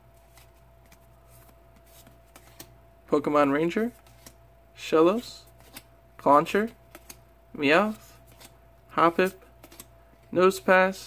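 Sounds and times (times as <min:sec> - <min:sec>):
cards sliding: 0:00.2 - 0:02.8, 0:03.9 - 0:04.4, 0:05.5 - 0:05.9, 0:06.9 - 0:07.2, 0:07.8 - 0:08.6, 0:09.2 - 0:10.2.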